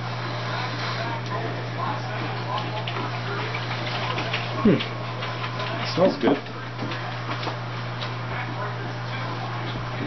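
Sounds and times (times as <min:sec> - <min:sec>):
low electrical hum: 0:00.0 - 0:10.0
faint background speech: 0:00.3 - 0:10.0.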